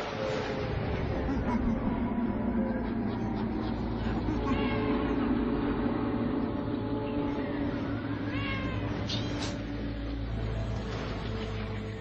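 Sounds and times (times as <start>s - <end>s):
held low music tones: 0.0s - 12.0s
pitched cries: 4.2s - 5.3s.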